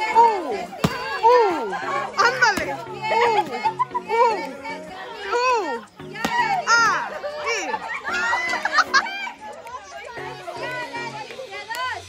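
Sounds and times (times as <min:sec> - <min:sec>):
background music: 0:00.0 - 0:12.0
children yelling and squealing: 0:00.0 - 0:12.0
stick whacking a pinata: 0:00.8 - 0:01.2.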